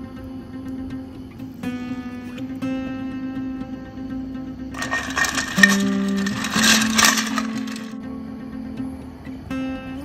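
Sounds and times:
soft acoustic guitar music: 0:00.0 - 0:04.7, 0:05.5 - 0:10.0
ice cubes clinking in metal bucket: 0:04.8 - 0:08.0.

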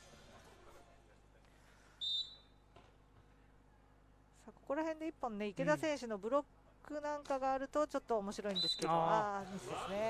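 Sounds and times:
referee's whistle blast: 0:02.0 - 0:02.6.

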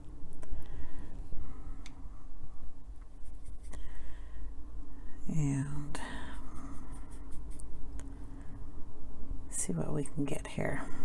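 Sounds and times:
low steady rumble: 0:00.0 - 0:11.0
paintbrush rubbing in palette: 0:03.0 - 0:03.8, 0:06.3 - 0:07.7.

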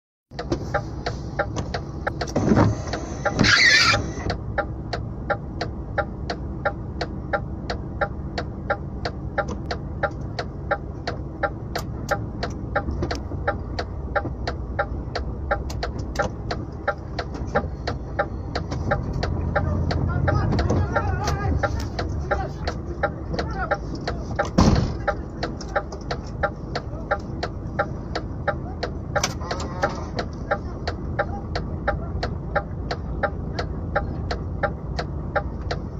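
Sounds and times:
regular ticking: 0:00.3 - 0:35.9
truck engine rumbling: 0:00.3 - 0:35.9
thump: 0:24.6 - 0:25.0.

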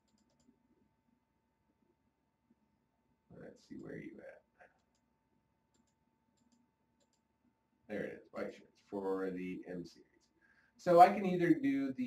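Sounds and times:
computer mouse clicks: 0:00.0 - 0:00.6, 0:04.6 - 0:05.1, 0:05.7 - 0:07.3.

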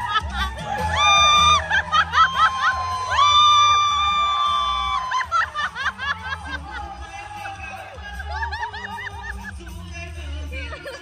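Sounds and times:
crowd laughter: 0:00.0 - 0:11.0
karaoke music through speakers: 0:00.0 - 0:11.0.

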